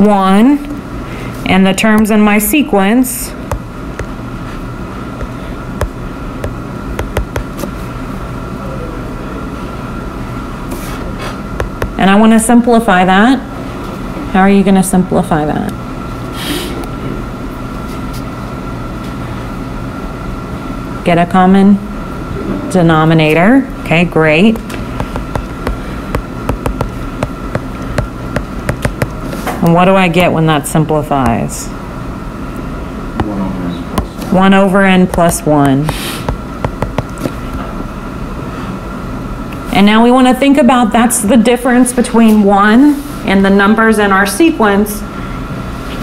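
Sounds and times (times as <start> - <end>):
low hum and hiss: 0.0 - 46.0
stylus tapping on tablet screen: 3.5 - 4.2, 5.8 - 7.6, 11.6 - 12.0, 25.0 - 29.2, 35.1 - 37.3.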